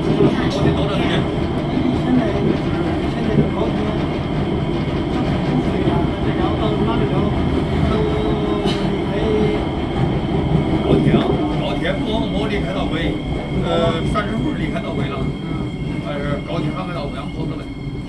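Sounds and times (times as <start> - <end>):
metro train rumbling: 0.0 - 18.0.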